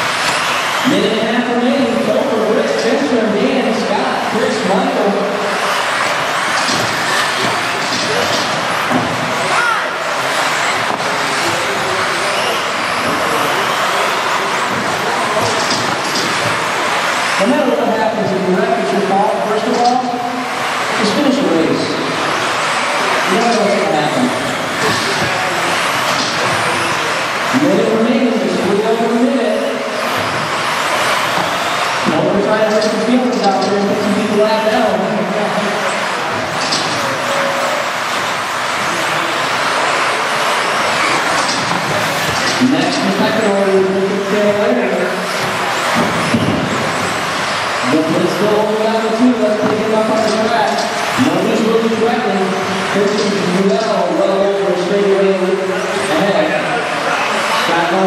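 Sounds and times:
electric rc cars racing: 0:00.0 - 0:58.0.

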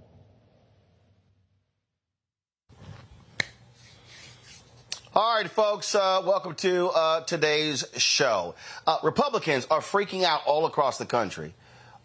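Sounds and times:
studio room hum: 0:02.7 - 0:12.0.

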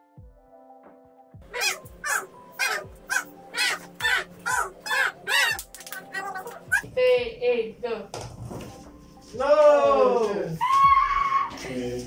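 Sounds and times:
harsh animal calls: 0:01.4 - 0:06.9.

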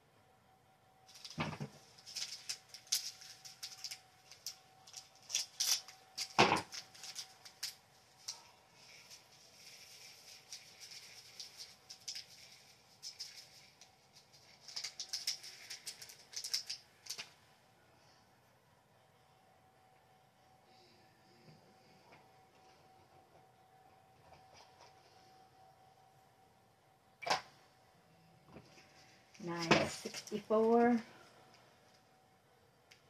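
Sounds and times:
plastic beads rattling through funnel: 0:01.1 - 0:17.3.

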